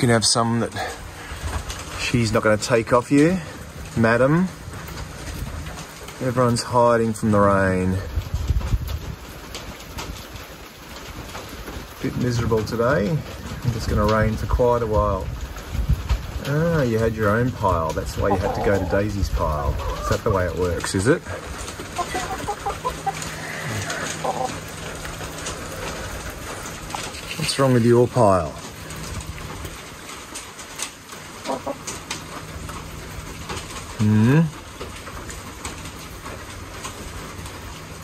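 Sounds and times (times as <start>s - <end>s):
steady rain: 0.0s - 38.0s
wind buffeting microphone: 3.6s - 6.2s, 7.9s - 30.4s
hens clucking softly: 18.2s - 20.7s, 21.4s - 24.7s, 31.4s - 31.9s.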